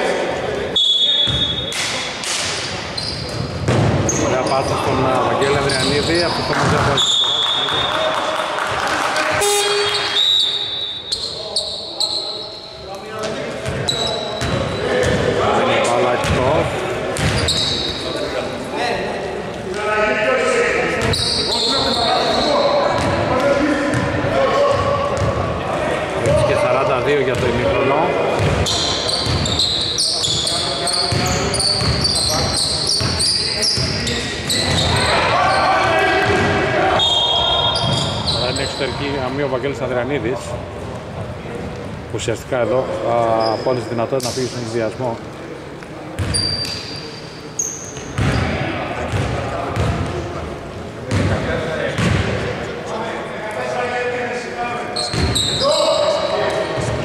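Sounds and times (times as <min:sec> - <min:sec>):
voices: 0:00.0 - 0:57.0.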